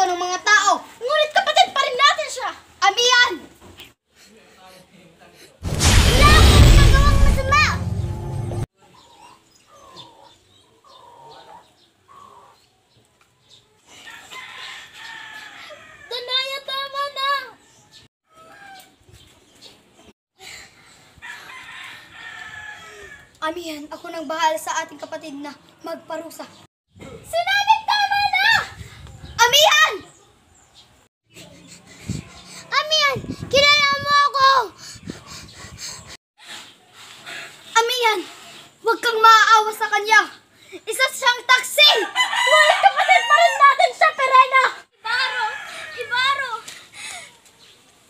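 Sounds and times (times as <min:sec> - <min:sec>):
background noise: 0:00.0 - 0:06.4, 0:08.8 - 0:48.0
faint bird calls: 0:08.9 - 0:12.6.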